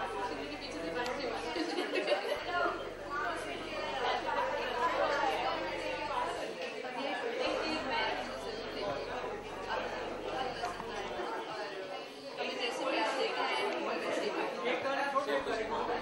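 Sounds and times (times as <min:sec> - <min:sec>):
several people talking: 0:00.0 - 0:16.0.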